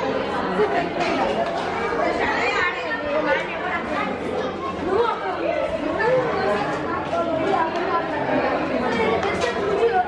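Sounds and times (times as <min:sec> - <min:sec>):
chatter of several people: 0:00.0 - 0:10.0.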